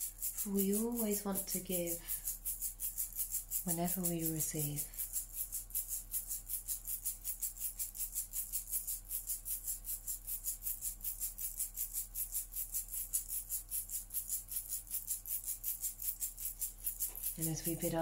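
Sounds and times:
rattle shaken rhythmically: 0:00.0 - 0:18.0.

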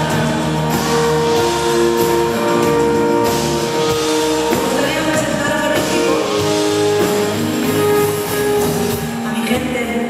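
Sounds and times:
live pop band playing: 0:00.0 - 0:10.0.

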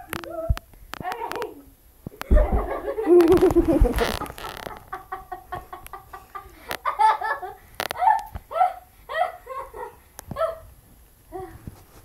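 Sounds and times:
girl laughing: 0:02.2 - 0:10.6.

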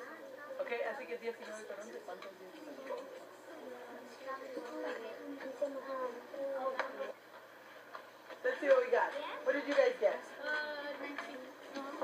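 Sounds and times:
children talking quietly: 0:00.0 - 0:07.3, 0:08.3 - 0:12.0.

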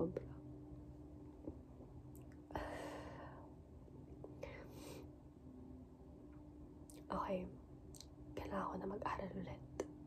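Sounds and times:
steady low hum: 0:00.0 - 0:10.0
woman breathing: 0:02.5 - 0:03.6, 0:04.3 - 0:05.2.

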